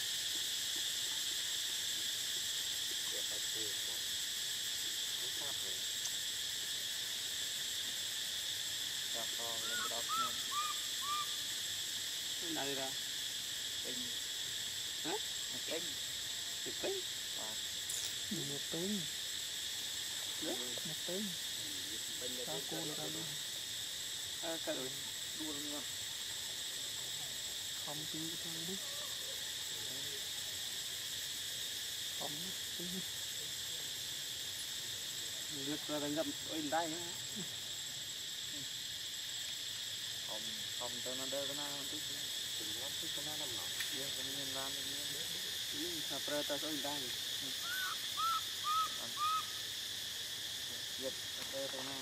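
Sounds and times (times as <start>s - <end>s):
forest insects droning: 0.0s - 52.0s
high insect whine: 0.0s - 52.0s
baby monkey coo calls: 9.6s - 11.5s, 47.6s - 49.7s.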